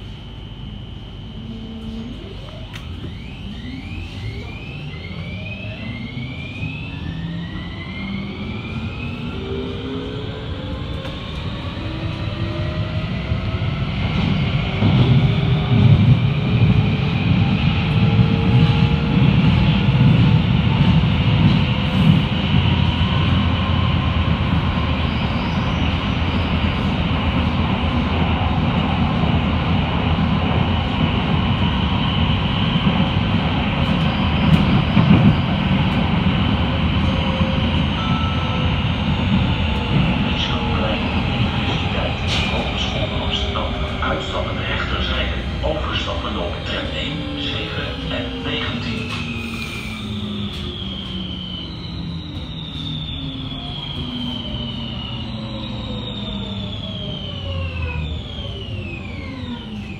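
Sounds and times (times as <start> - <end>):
wheels rumbling on rails: 7.4 - 59.9.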